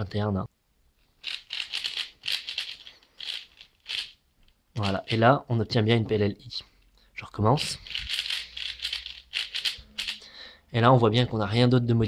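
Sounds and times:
puzzle cube clicking: 0:01.2 - 0:05.2, 0:07.6 - 0:10.2.

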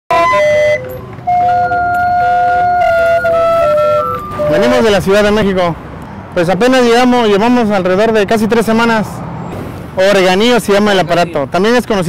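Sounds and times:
barrel organ melody: 0:00.1 - 0:05.6.

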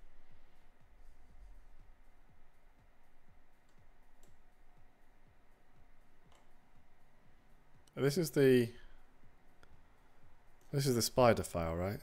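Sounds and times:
faint computer mouse clicks: 0:03.6 - 0:04.4.

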